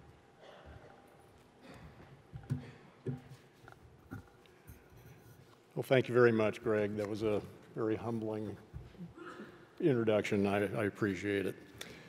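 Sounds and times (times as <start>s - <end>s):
man speaking: 5.8s - 8.7s, 9.8s - 11.7s.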